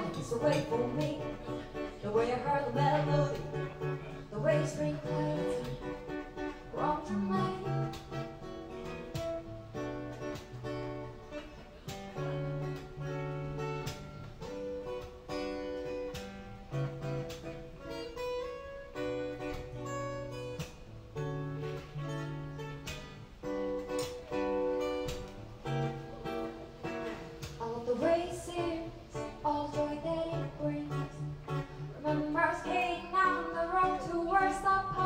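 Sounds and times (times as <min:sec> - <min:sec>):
acoustic guitar plucked chords: 0:00.0 - 0:35.0.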